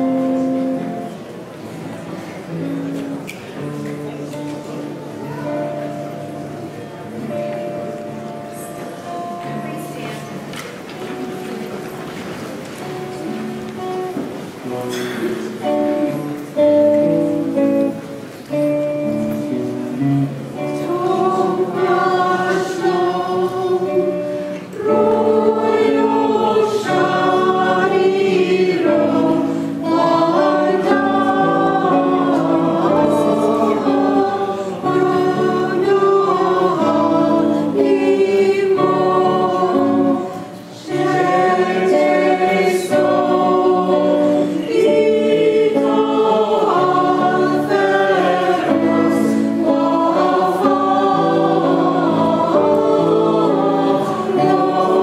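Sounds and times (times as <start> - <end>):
church choir singing: 0.0 - 2.5, 3.6 - 55.0.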